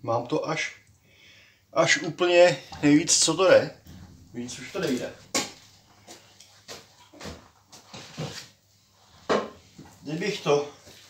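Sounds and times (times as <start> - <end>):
handling knocks and clunks: 2.7 - 8.3.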